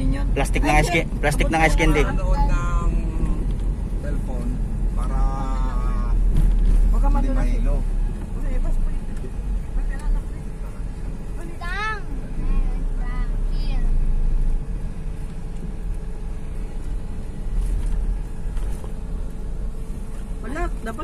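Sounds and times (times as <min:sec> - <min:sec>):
road noise: 0:00.0 - 0:21.0
van engine rumble: 0:00.0 - 0:21.0.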